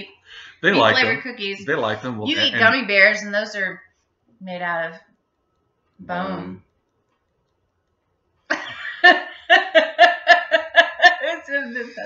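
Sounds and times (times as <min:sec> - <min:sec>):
woman laughing loudly: 0:00.8 - 0:01.2, 0:02.3 - 0:02.8, 0:08.5 - 0:12.0.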